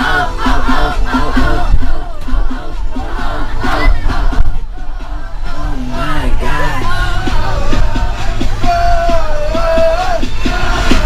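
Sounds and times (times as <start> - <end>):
music playing: 0.0 - 11.0.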